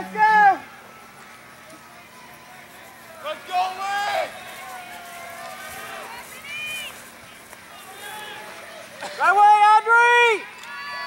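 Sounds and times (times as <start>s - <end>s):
crowd hiss: 0.0s - 11.0s
distant spectators shouting: 0.0s - 11.0s.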